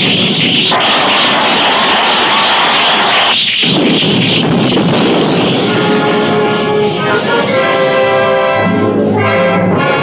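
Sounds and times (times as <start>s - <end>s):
explosions: 0.0s - 6.9s
war scene sound effects roar: 0.0s - 7.5s
dramatic film music: 4.9s - 10.0s.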